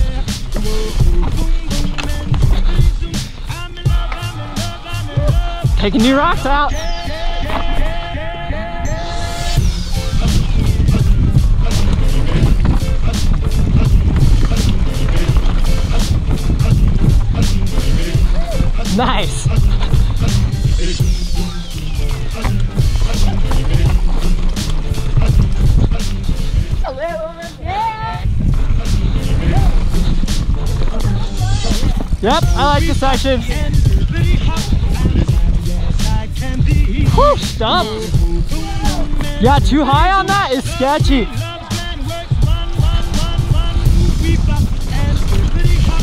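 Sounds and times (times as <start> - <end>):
bike clattering over rocks: 0.0 - 4.6, 10.6 - 20.7, 21.5 - 27.1, 37.7 - 46.0
music playing: 0.0 - 46.0
wind and tyre rumble: 0.0 - 46.0
high tone gliding downward: 6.3 - 10.1
wavering pitched tone: 6.4 - 10.1.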